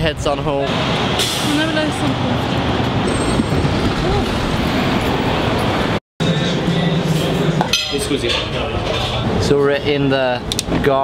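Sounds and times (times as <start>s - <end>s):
traffic running steadily: 0.0s - 11.0s.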